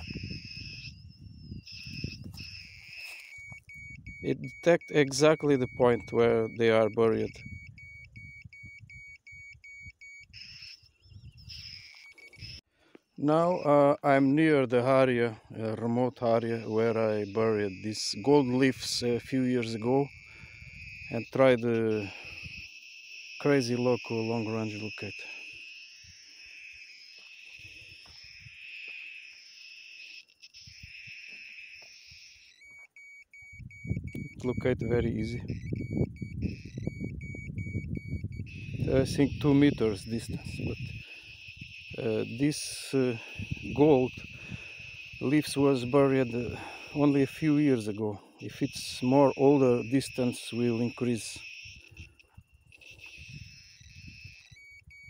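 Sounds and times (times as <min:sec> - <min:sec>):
rapid short high beeps: 0:00.0 - 0:12.6, 0:30.0 - 0:55.0.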